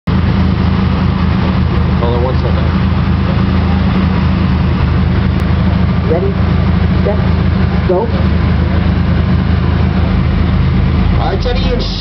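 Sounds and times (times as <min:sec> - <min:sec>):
subwoofer bass rumble: 0:00.1 - 0:12.0.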